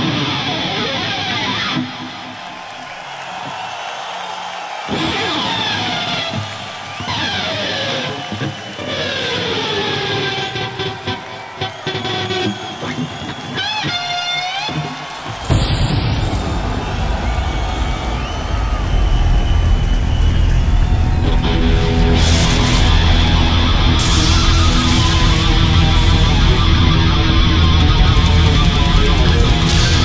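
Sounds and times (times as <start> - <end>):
electric guitar sliding notes: 21.1 - 30.0.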